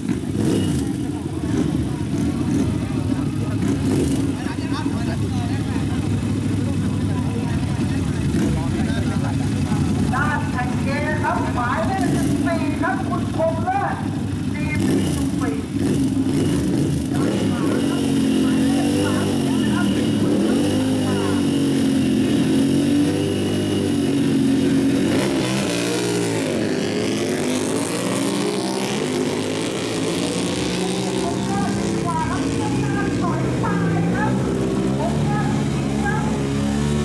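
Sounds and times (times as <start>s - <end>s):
motorcycle engine revving: 0.0s - 37.0s.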